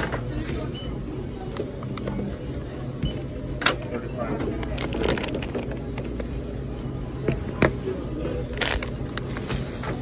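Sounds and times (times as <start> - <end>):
steady low store hum: 0.0 - 10.0
packaging crinkling: 8.4 - 9.9.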